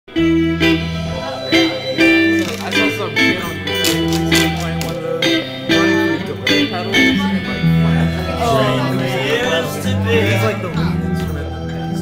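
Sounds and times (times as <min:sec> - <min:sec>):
guitar plucked notes and chords: 0:00.1 - 0:12.0.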